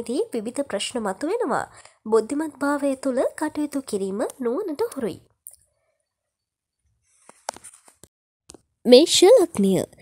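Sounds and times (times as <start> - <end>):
person's voice: 0.0 - 5.3, 8.9 - 10.0.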